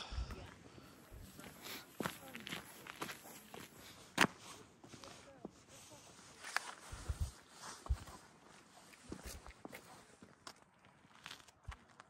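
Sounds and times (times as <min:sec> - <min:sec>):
faint background voices: 0:00.0 - 0:10.5
footsteps on paved path: 0:00.0 - 0:12.0.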